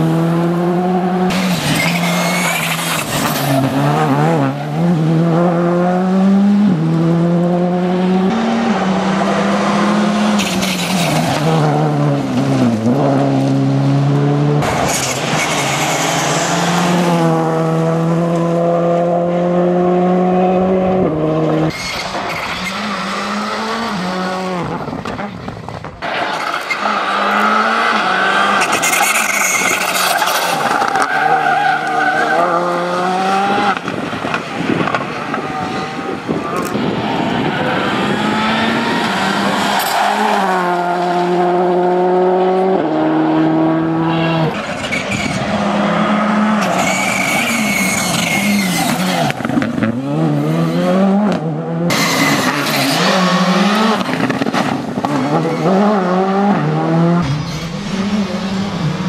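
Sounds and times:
rally car engine revving: 0.0 - 59.0.

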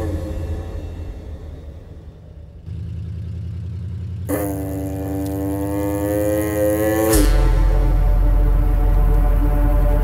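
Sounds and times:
horn-like drone tone: 4.3 - 10.0.

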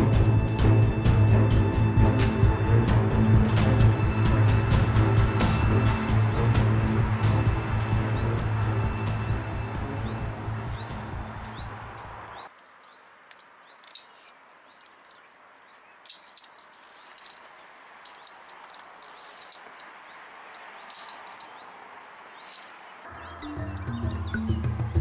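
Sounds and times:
background music: 0.0 - 12.4, 23.1 - 25.0
carabiners clinking on steel cable: 12.5 - 15.3, 16.0 - 21.6, 22.4 - 22.8.

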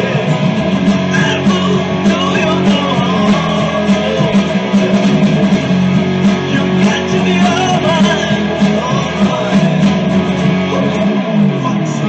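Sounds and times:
rock electric guitar: 0.0 - 12.0.

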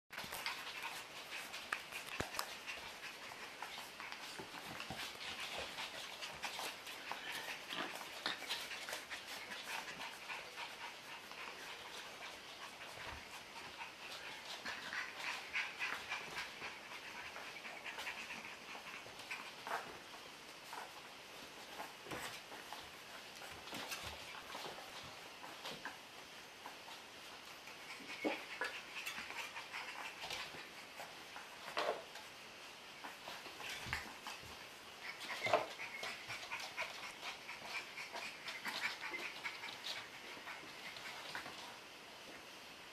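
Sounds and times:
puppy panting: 0.1 - 42.0
puppy claws clicking on tile: 0.2 - 3.8.

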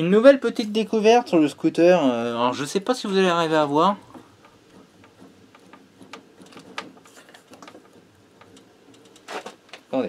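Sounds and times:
light clicks and knocks: 3.0 - 9.9.

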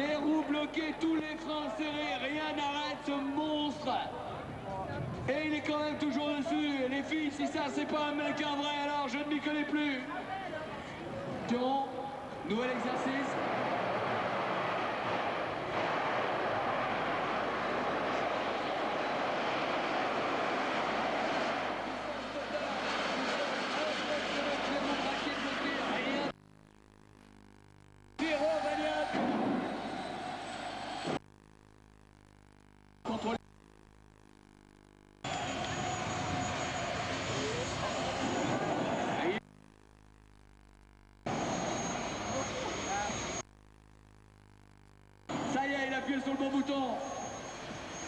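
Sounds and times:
wavering rising whine: 0.0 - 48.0.

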